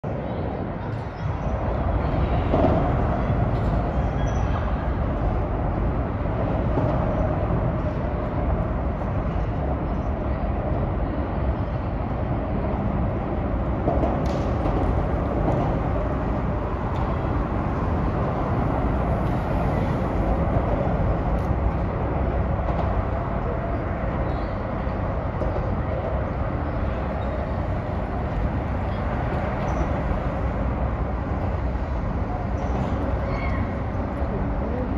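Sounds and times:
traffic rumble: 0.0s - 34.9s.

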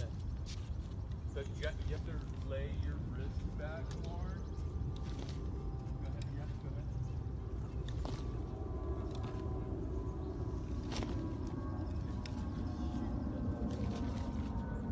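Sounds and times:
steady low rumble: 0.0s - 14.9s.

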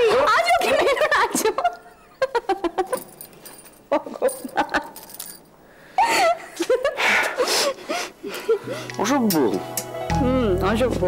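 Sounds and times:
woman giggling: 0.6s - 3.1s, 3.9s - 5.0s.

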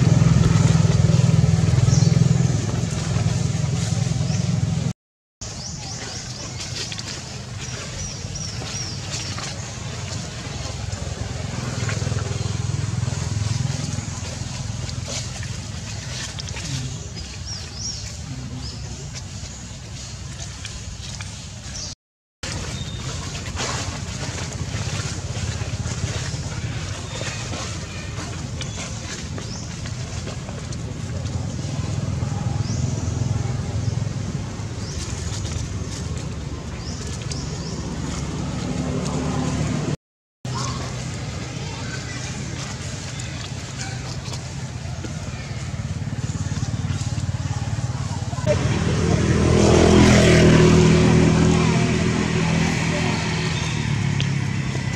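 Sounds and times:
low engine rumble: 0.0s - 54.9s.

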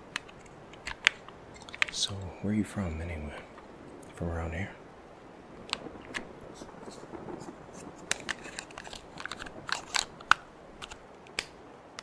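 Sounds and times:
batteries clicking and rattling: 0.1s - 2.0s, 5.7s - 11.4s.

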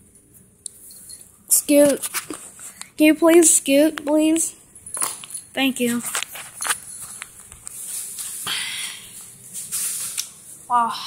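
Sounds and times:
footsteps: 0.8s - 10.6s
rustling scuffs: 5.9s - 10.6s.

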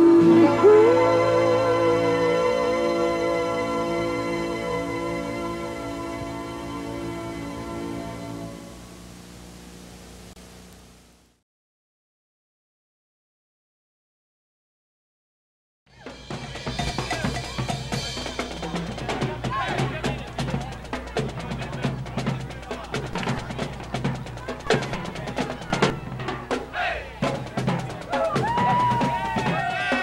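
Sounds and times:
drums: 0.0s - 11.0s, 15.9s - 30.0s
marching band playing: 15.9s - 30.0s.

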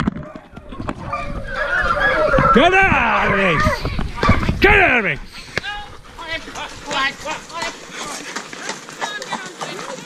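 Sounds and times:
voices: 0.3s - 10.0s
hooves clip-clopping on tarmac: 5.6s - 10.0s.

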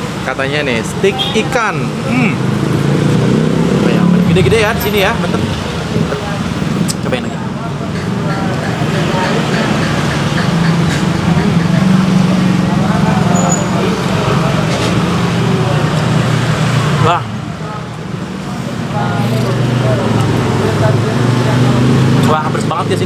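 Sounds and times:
motorbikes passing: 0.0s - 23.0s
street traffic: 0.0s - 23.0s.

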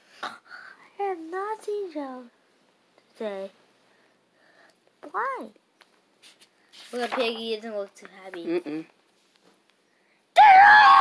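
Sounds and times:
child screaming: 10.4s - 11.0s.

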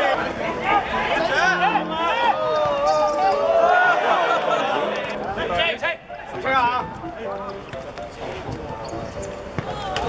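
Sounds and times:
players calling out: 0.0s - 6.5s
football thuds and bounces: 9.5s - 10.0s.

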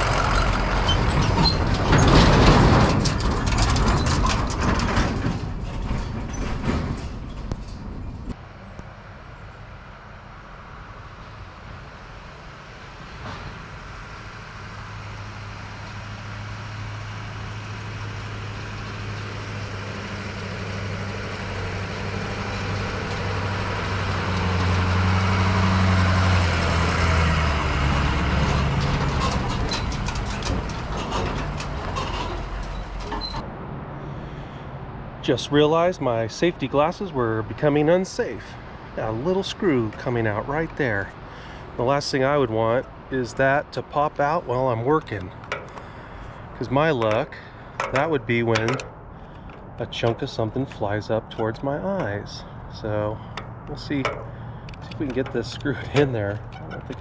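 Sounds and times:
truck driving past on gravel: 0.0s - 8.6s, 10.8s - 34.6s, 49.3s - 57.0s
truck engine low hum: 0.0s - 57.0s.

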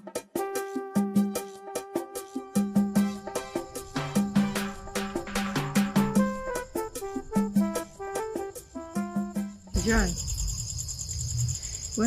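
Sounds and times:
crickets chirping: 2.6s - 12.0s.

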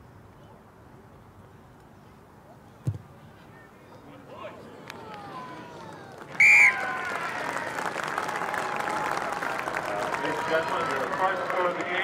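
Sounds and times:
stadium crowd murmuring: 0.0s - 12.0s
crowd applause: 5.0s - 12.0s
referee's whistle blast: 6.4s - 6.8s.

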